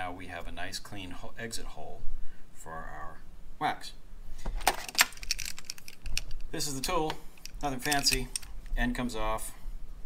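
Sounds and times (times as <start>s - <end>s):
metal clinking and rattling: 4.6s - 6.4s, 7.4s - 8.6s.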